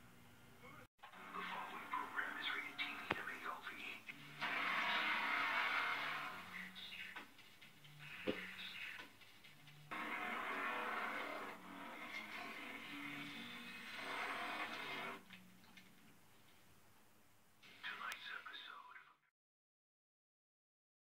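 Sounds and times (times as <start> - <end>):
horror theme music from television: 1.0 - 16.3.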